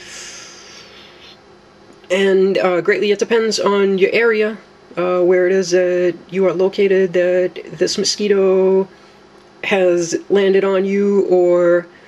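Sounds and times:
man breathing out: 0.0s - 1.4s
faint steady hum: 0.0s - 12.0s.

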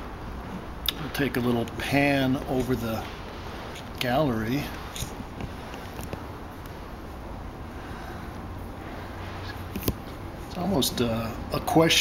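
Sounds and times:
low rumble and hiss of room noise: 0.0s - 12.0s.

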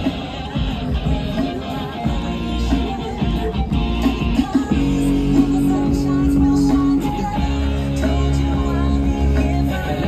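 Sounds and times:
live band with guitar and keyboard: 0.0s - 10.0s.

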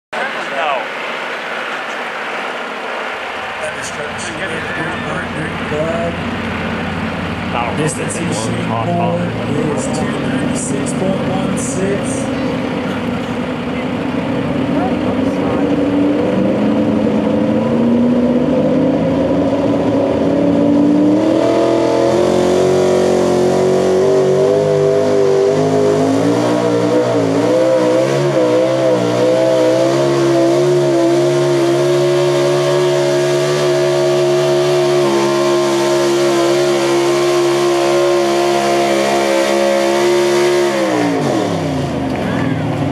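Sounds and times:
truck engine revving: 0.2s - 42.9s.

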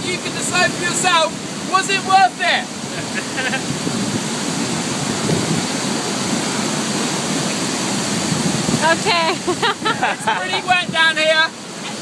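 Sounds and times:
heavy rain: 0.0s - 12.0s
waterfall rushing: 0.0s - 12.0s.

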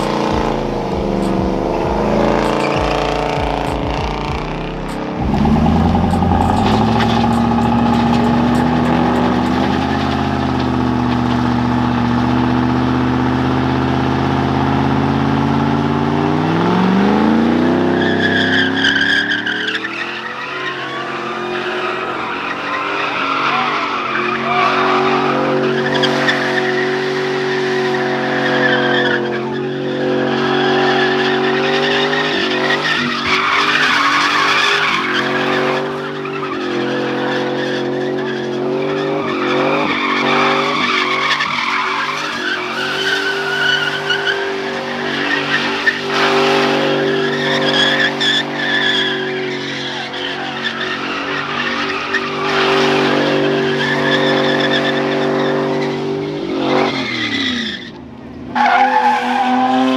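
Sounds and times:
truck engine revving high: 0.0s - 59.9s
tyres screeching: 4.7s - 12.4s, 17.1s - 58.0s, 58.6s - 59.9s.

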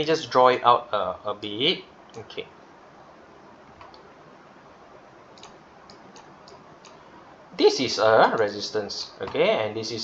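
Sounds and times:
low room hiss: 0.0s - 10.0s
computer mouse clicks: 3.8s - 4.1s, 5.3s - 7.0s.

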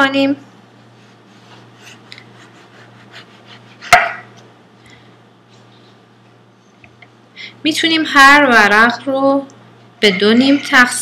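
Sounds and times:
sharp knock on cutting board: 3.9s - 4.2s.

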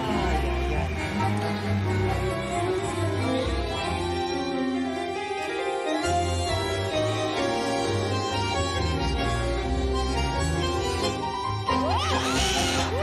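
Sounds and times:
audience applause and cheering: 0.0s - 4.4s
tango music: 0.0s - 13.0s.

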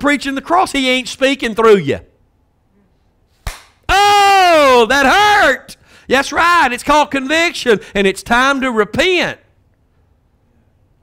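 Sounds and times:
sharp hand claps: 3.4s - 3.8s.

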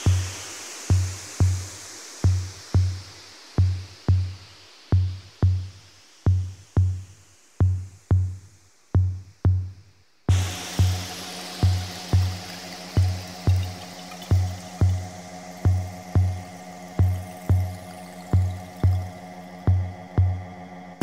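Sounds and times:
electronic kick drum: 0.0s - 20.6s.

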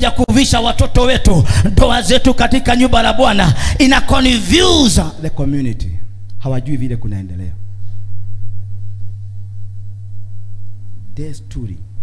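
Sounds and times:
low hum: 1.6s - 12.0s.

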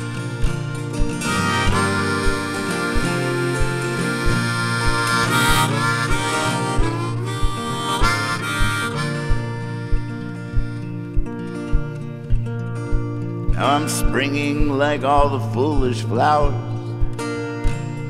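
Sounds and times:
harmonica with bent notes: 0.0s - 13.9s
strummed acoustic guitar: 0.0s - 18.0s
low thump on the beat: 8.6s - 17.8s.

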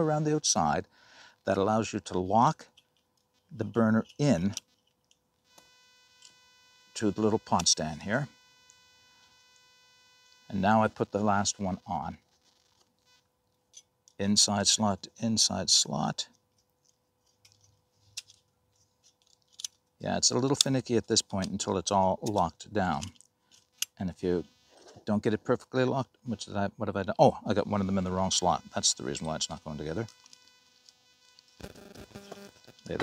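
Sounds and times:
faint low buzzing: 0.0s - 15.9s, 19.9s - 33.0s.

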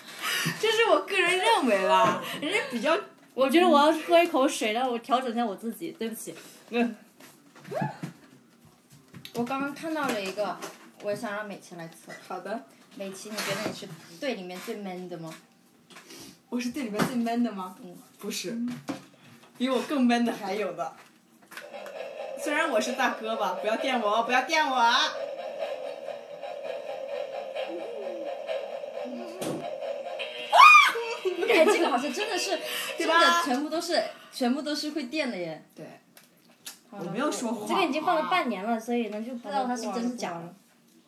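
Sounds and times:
high-pitched vocal whine: 27.5s - 31.4s.

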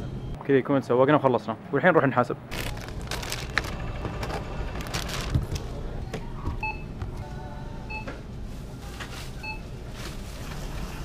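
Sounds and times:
store background noise: 0.0s - 11.0s
items being handled: 2.5s - 5.8s.

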